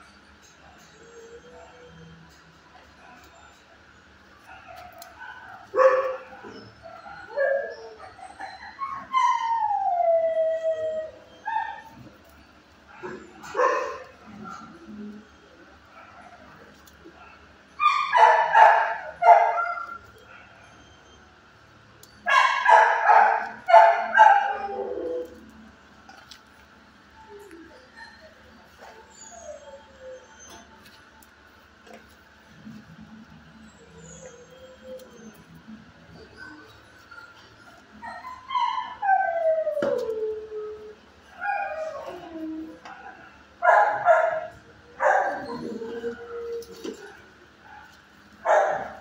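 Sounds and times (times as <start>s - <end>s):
dog barking: 5.2s - 6.6s, 13.0s - 14.0s, 22.3s - 24.7s, 47.8s - 49.0s
dog howling: 5.7s - 12.0s, 22.6s - 25.5s, 37.9s - 49.0s.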